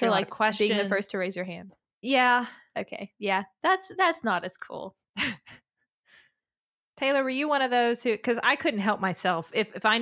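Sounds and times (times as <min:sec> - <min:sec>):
woman laughing breathily: 0:05.2 - 0:05.7.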